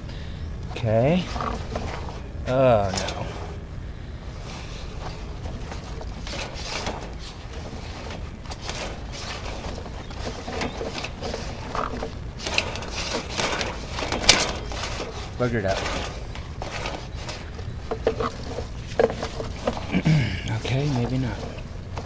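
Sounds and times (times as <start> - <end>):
cable rattling and scraping in pipe: 0.0 - 3.7, 4.3 - 22.0
steady low hum: 0.0 - 22.0.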